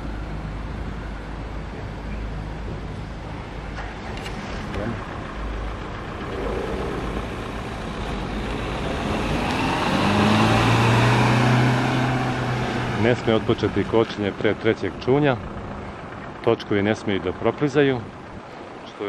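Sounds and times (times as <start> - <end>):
car engine running: 0.0 - 18.9.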